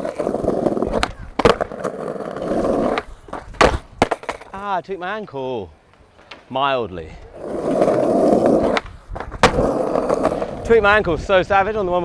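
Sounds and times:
skateboard slamming on concrete: 0:00.0 - 0:04.5, 0:07.4 - 0:10.6
skateboard wheels rolling over bricks: 0:00.0 - 0:04.7, 0:07.2 - 0:11.0.

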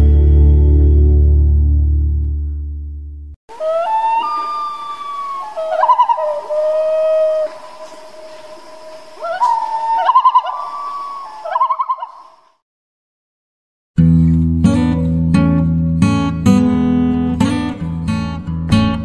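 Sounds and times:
waterbird whistled calls and trills: 0:03.6 - 0:12.4.

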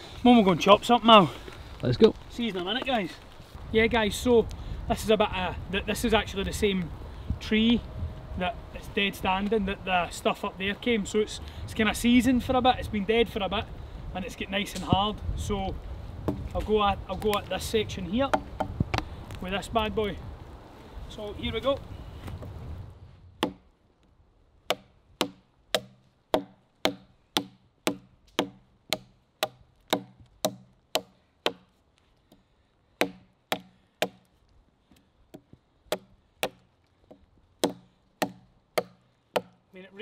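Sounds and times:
knife chopping into log: 0:24.7 - 0:31.6, 0:33.0 - 0:34.2, 0:37.6 - 0:39.6.

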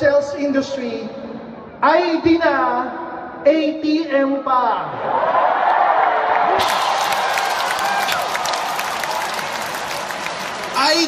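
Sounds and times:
large audience applauding: 0:05.6 - 0:11.0.

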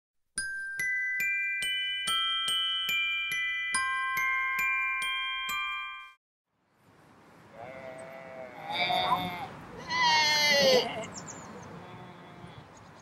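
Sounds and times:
glockenspiel chime notes: 0:00.4 - 0:06.2
people imitating sheep bleats: 0:07.6 - 0:11.1.

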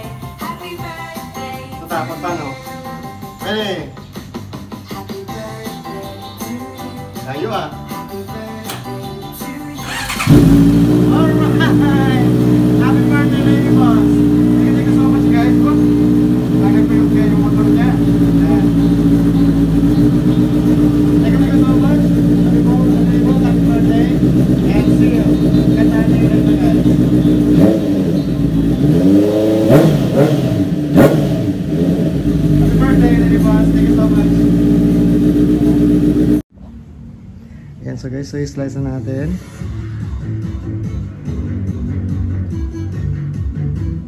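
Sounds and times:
motorcycle engine idling and revving: 0:09.7 - 0:36.5.

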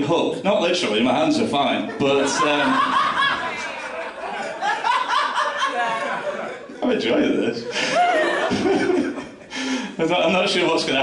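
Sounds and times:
person laughing: 0:07.7 - 0:09.5.

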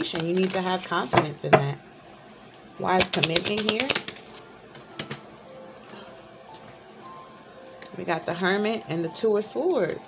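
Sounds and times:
faint background music: 0:00.0 - 0:10.0
cards being shuffled: 0:02.9 - 0:04.4.

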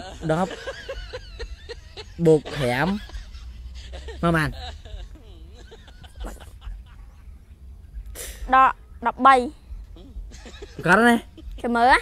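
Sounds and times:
man's stifled laughter: 0:00.0 - 0:07.4.

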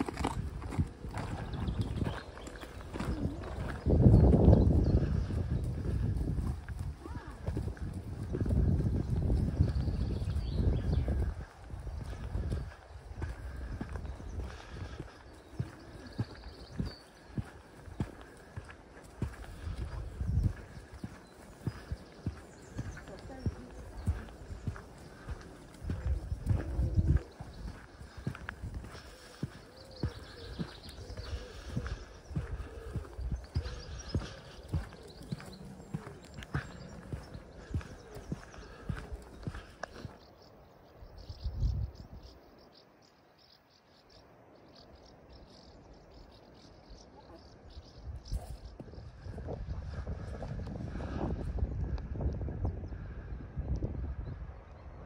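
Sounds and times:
horse hooves clip-clopping on sand: 0:00.0 - 0:42.3, 0:45.0 - 0:52.1.

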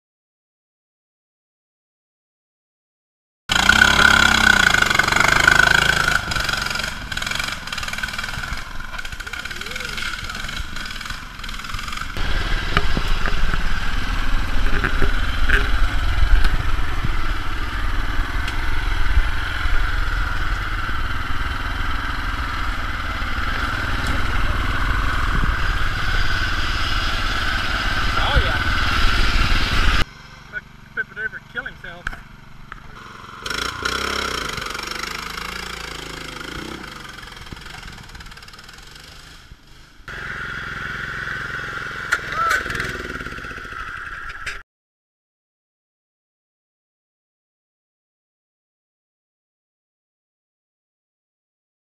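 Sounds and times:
riding mower engines revving: 0:03.5 - 0:44.6
people's voices: 0:09.0 - 0:10.8, 0:14.6 - 0:15.8.

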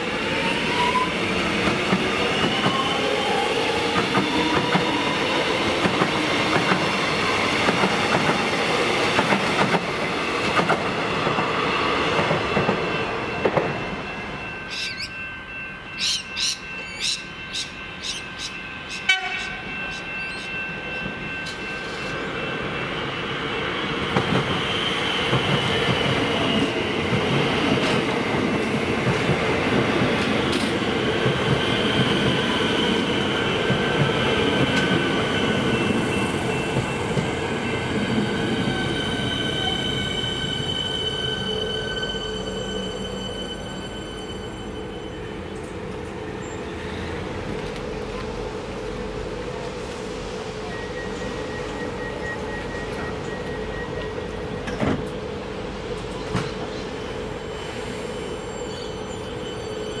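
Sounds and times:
train wheels rumbling on rails: 0:00.0 - 1:00.0.

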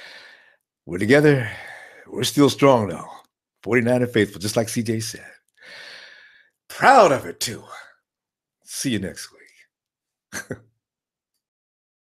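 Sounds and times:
man speaking: 0:00.9 - 0:05.3, 0:06.7 - 0:07.9, 0:08.7 - 0:09.4
man chuckling: 0:10.3 - 0:10.7.

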